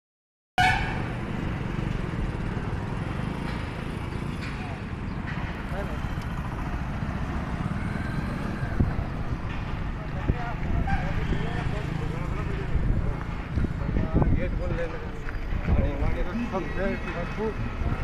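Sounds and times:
motorcycles: 0.6s - 18.0s
traffic rumble: 0.6s - 18.0s
voices of passers-by: 0.6s - 18.0s.

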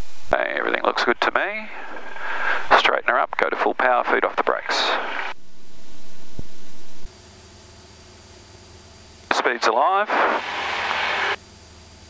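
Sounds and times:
faint low engine drone: 0.0s - 12.0s
loud rushing hiss: 9.3s - 11.4s.

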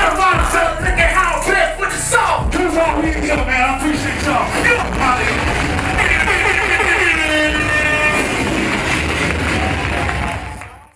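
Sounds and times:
loud music with deep bass: 0.0s - 10.9s.

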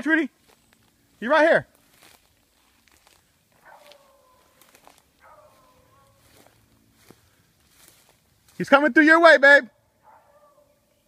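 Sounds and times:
dog baying faintly: 3.6s - 6.5s, 10.0s - 11.0s.

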